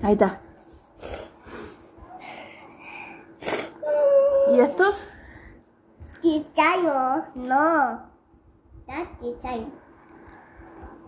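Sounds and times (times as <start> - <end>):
person breathing breathily: 1.0 - 3.6.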